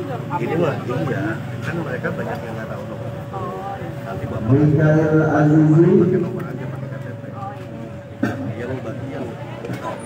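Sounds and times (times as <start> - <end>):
faint background voices: 0.0 - 10.0
man's voice: 4.3 - 6.9.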